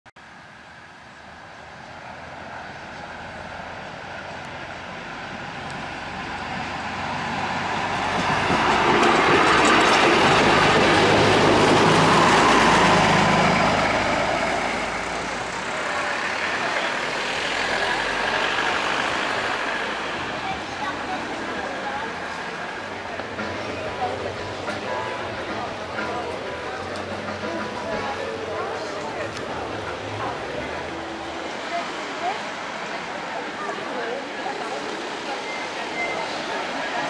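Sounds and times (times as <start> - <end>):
railbus passing by: 0.2 - 37.0.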